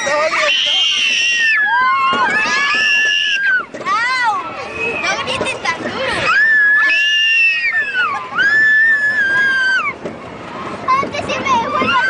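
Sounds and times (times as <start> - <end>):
children screaming: 0.0 - 10.1, 11.3 - 12.0.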